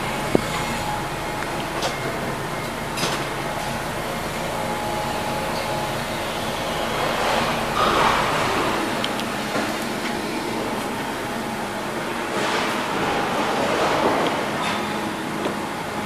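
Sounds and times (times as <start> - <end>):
engine running: 0.0 - 16.0.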